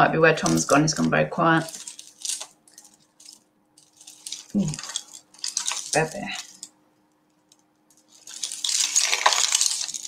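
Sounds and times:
jewellery chains clinking: 0:01.7 - 0:06.7.

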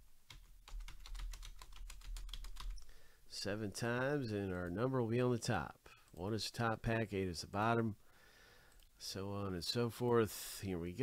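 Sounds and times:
computer keyboard typing: 0:00.3 - 0:02.9.

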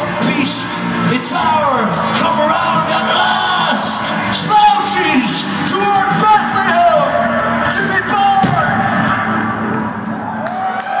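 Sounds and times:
audience whooping and yelling: 0:00.0 - 0:11.0.

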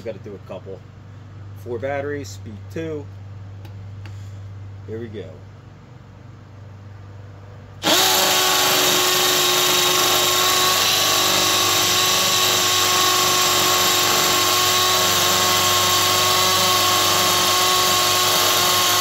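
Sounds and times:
hammer drill boring into concrete: 0:07.8 - 0:19.0.

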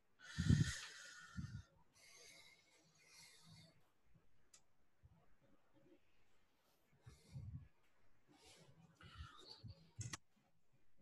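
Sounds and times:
low breath puffs: 0:00.2 - 0:03.8.

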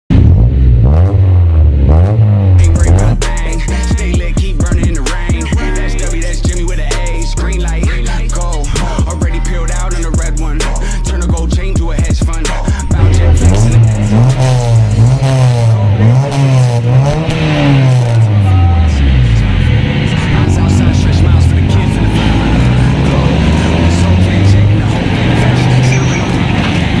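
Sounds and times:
car engine droning and revving: 0:00.1 - 0:27.0.

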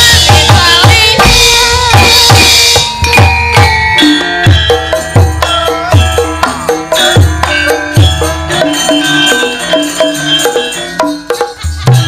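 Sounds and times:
woman singing: 0:00.0 - 0:03.0
hand drum beating: 0:00.0 - 0:12.0
ringing metallophone tones: 0:00.0 - 0:12.0.

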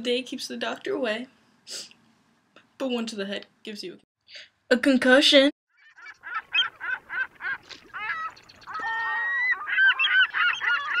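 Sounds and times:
birds honking: 0:05.7 - 0:11.0.

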